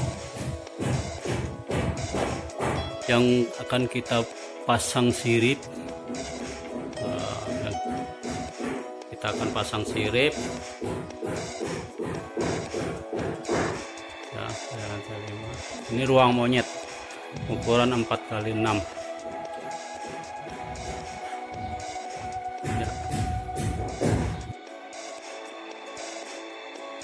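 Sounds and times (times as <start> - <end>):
construction knocks and bangs: 0.0 - 3.0, 6.0 - 13.9.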